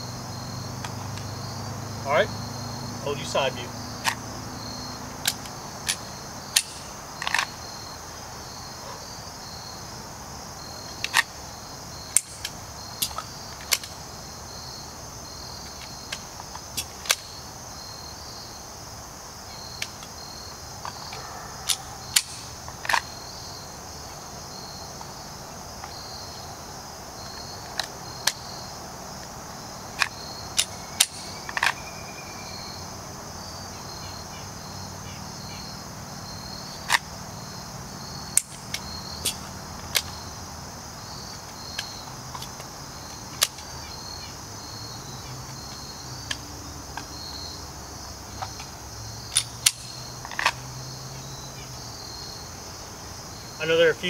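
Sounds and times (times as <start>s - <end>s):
insects chirring: 0.0s - 54.0s.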